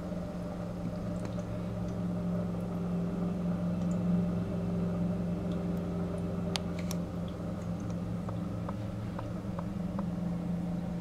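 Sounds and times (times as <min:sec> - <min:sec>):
aquarium filter pump hum: 0:00.0 - 0:11.0.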